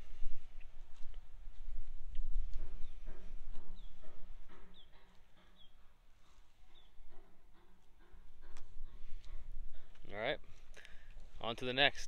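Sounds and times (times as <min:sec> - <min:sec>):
wind rumble on microphone: 0:00.0 - 0:04.8, 0:08.5 - 0:10.6
footsteps on wooden boardwalk: 0:00.2 - 0:11.4.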